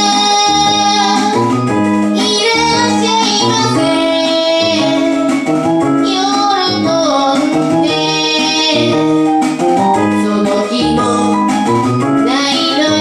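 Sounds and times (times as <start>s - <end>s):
woman singing into a microphone: 0.0s - 1.5s, 2.2s - 5.3s, 6.0s - 9.1s, 10.2s - 11.5s, 12.2s - 13.0s
keytar bass line: 0.0s - 13.0s.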